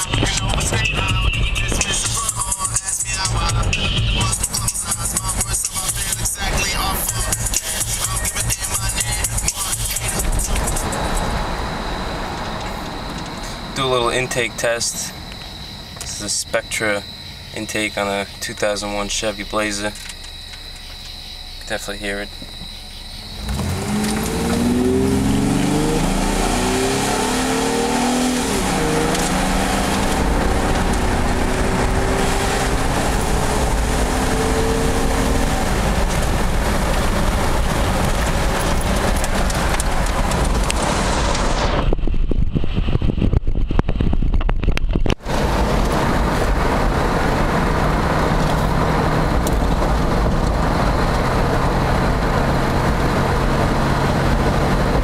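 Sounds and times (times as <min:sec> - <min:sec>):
car engine revving: 0:00.0 - 0:41.9, 0:45.1 - 0:55.0.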